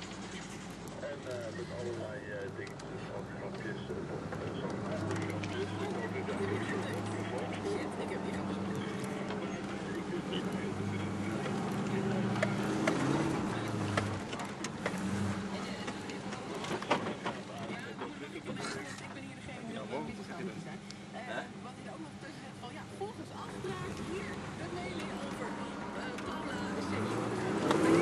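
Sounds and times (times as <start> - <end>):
engine idling: 0.0 - 28.0.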